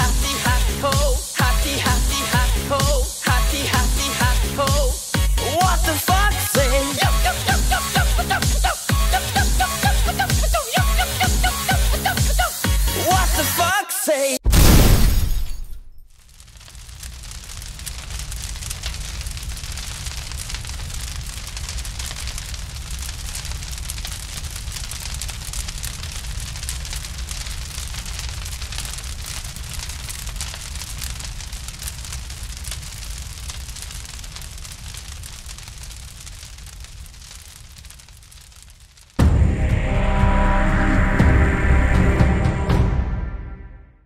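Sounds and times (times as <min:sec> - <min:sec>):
loud music: 0:00.0 - 0:14.4, 0:39.2 - 0:44.0
fire rumbling and hissing: 0:16.1 - 0:40.9.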